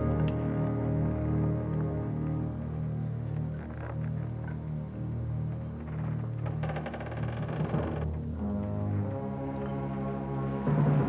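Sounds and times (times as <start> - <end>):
orchestral low brass chords: 0.0 - 3.6, 8.2 - 11.0.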